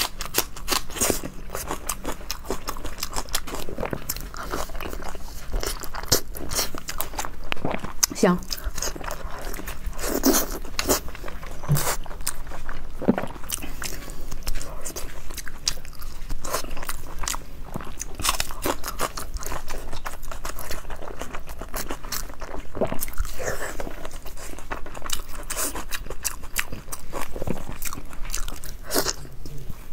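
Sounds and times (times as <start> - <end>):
chewing and biting sausage: 0.0 - 29.9.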